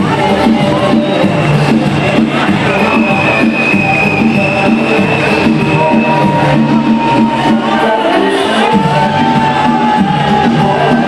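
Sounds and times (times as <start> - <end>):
loud rhythmic music: 0.0 - 11.0.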